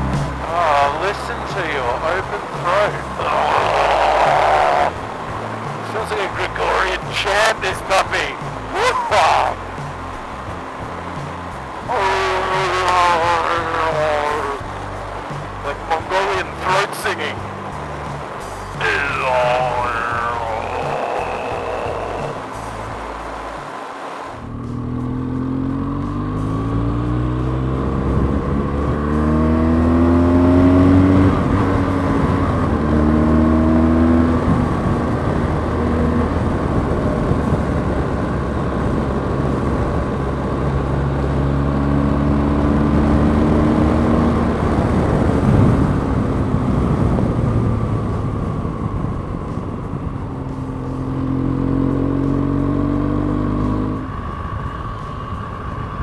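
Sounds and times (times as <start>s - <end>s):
motorcycle engine accelerating: 0.0s - 16.8s, 17.4s - 23.6s, 24.4s - 56.0s
wind rush: 26.6s - 30.0s, 30.6s - 41.2s, 42.6s - 51.0s.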